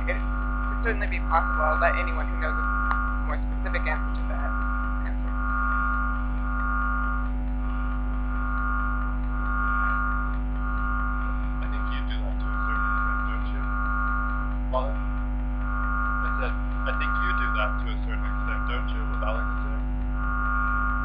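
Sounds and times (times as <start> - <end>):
electrical mains hum: 0.0 - 21.0
higher pulsing tone: 0.0 - 21.0.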